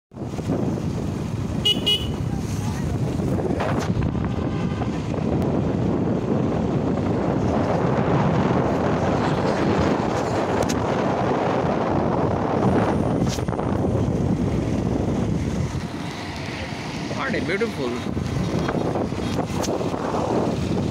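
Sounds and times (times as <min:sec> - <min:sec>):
road noise: 0:00.1 - 0:20.9
wind rush on microphone: 0:00.1 - 0:20.9
high-pitched horn toot: 0:01.6 - 0:02.2.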